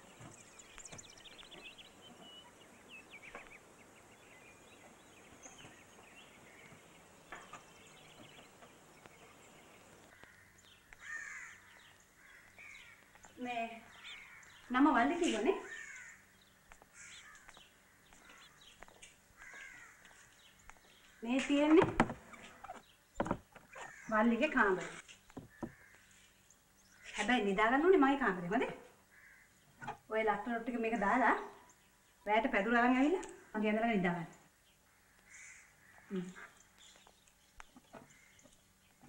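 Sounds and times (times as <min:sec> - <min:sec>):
crows cawing: 0:10.0 - 0:14.7, 0:15.6 - 0:20.4, 0:23.7 - 0:24.2, 0:25.4 - 0:26.2, 0:29.0 - 0:29.6, 0:34.8 - 0:36.6, 0:38.0 - 0:38.5
small bird chirps: 0:35.2 - 0:39.0.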